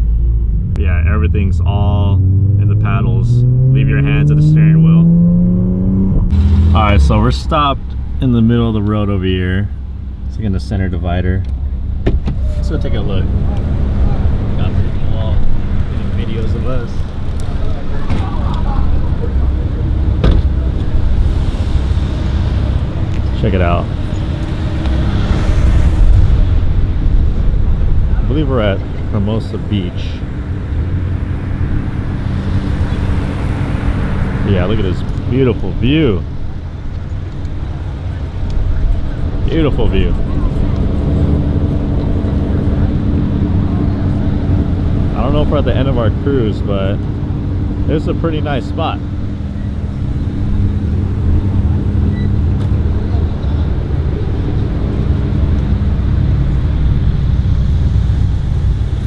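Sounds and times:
car engine idling: 0:00.0 - 0:05.0, 0:06.3 - 0:59.0
traffic rumble: 0:00.0 - 0:59.0.

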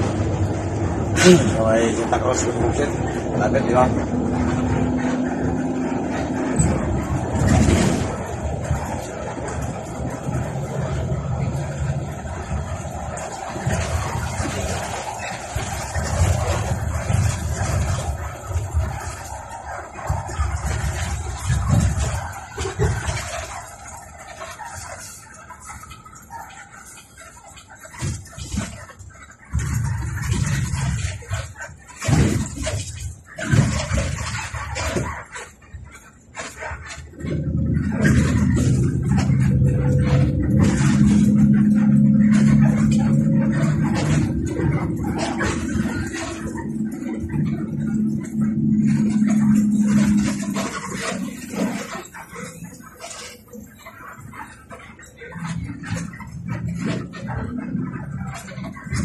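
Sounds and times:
bus engine and road rumble: 0:00.0 - 0:26.8, 0:36.8 - 0:59.0
steady pitched tone: 0:37.0 - 0:59.0.

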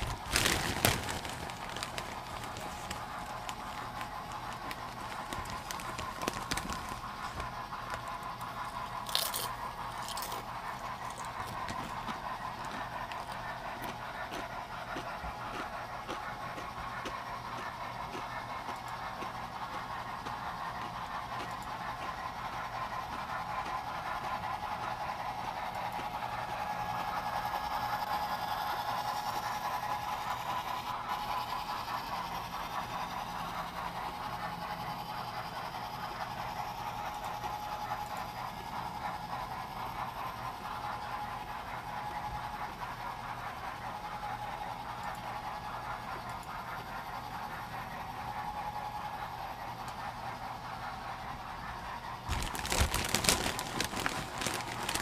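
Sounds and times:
model trains rumbling on rails: 0:00.0 - 0:55.0.

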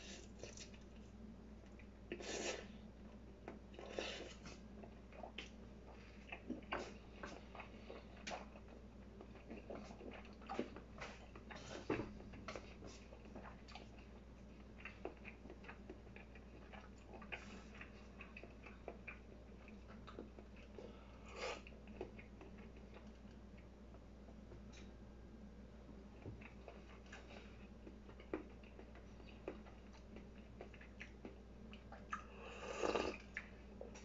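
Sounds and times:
person chewing food: 0:00.0 - 0:24.9, 0:26.1 - 0:34.0
person slurping food: 0:32.4 - 0:33.2.

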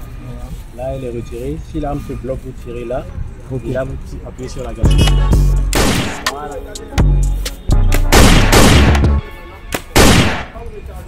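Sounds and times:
background music with low bass: 0:04.8 - 0:10.3
paintball marker shots: 0:05.0 - 0:06.4, 0:07.9 - 0:09.1, 0:09.7 - 0:10.6.

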